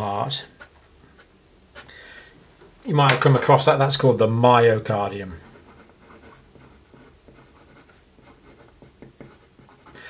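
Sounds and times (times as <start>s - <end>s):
marker pen scratching on paper: 0.5s - 1.9s, 5.4s - 10.0s.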